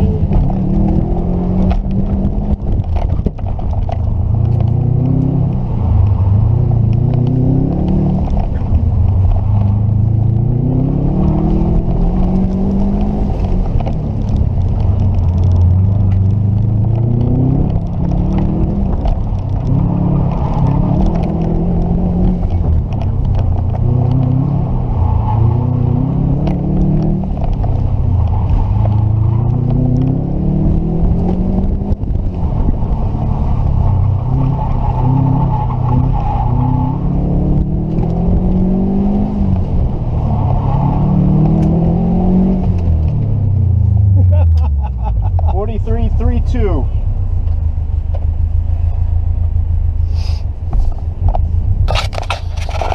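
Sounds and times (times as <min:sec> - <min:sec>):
car engine revving: 0:00.0 - 0:52.9.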